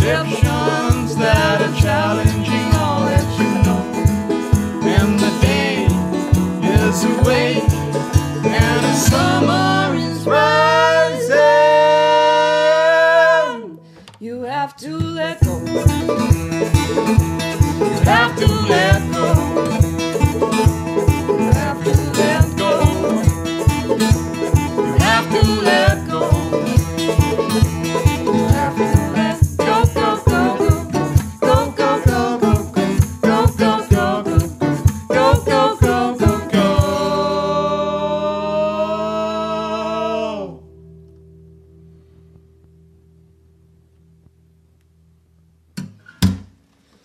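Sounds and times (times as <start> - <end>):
banjo: 0.0 - 11.8, 14.9 - 37.9
acoustic guitar: 0.0 - 47.0.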